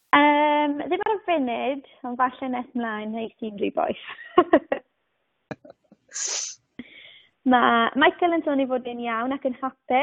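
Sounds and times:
short hiss: 6.1s - 6.8s.

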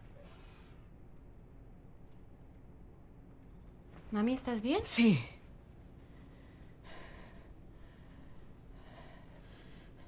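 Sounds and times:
woman breathing heavily: 6.0s - 10.0s.

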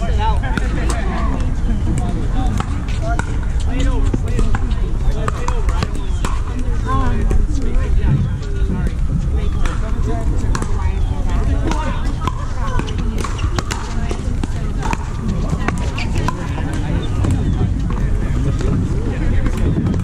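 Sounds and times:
voices chattering: 0.0s - 20.0s
wind rumble on microphone: 0.0s - 20.0s.

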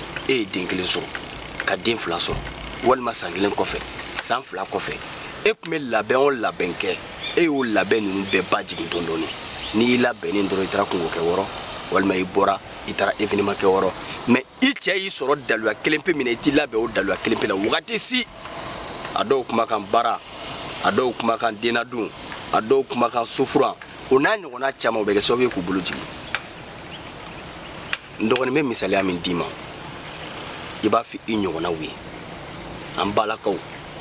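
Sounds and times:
crickets chirring: 0.0s - 34.0s
man talking: 0.3s - 18.3s, 19.2s - 20.2s, 20.8s - 26.1s, 28.2s - 29.6s, 30.8s - 32.0s, 33.0s - 33.6s.

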